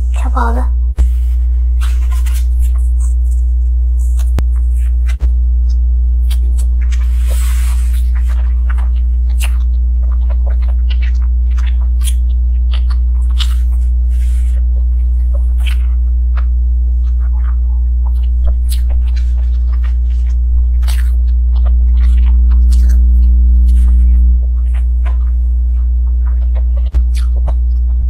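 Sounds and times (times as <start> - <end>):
loud steady low hum: 0.0 - 28.0
rustling scrape: 1.1 - 5.0, 6.9 - 8.6.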